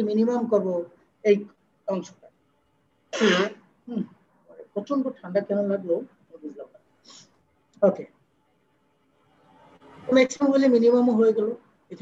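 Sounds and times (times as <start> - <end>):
person speaking: 0.0 - 2.4, 3.2 - 7.2, 7.8 - 8.2, 9.9 - 12.0
person clearing throat: 3.2 - 4.1.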